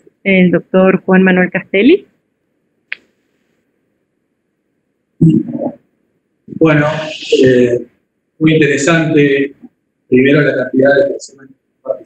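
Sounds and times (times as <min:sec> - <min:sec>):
man's brief low vocal sound: 0:06.5 - 0:07.8.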